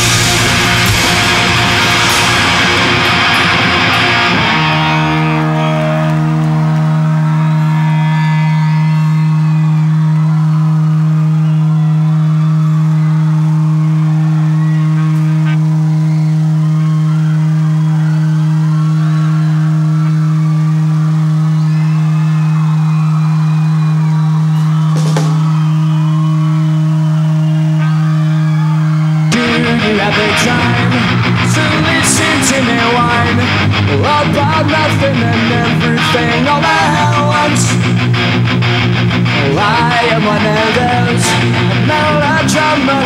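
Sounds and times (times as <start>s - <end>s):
crowd shouting and whistling: 0.0s - 43.0s
electric guitar feedback drone: 0.0s - 43.0s.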